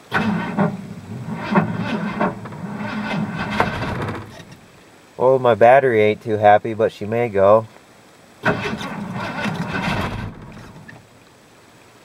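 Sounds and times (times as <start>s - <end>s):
engine cranking without starting: 0.0s - 4.7s, 8.4s - 11.0s.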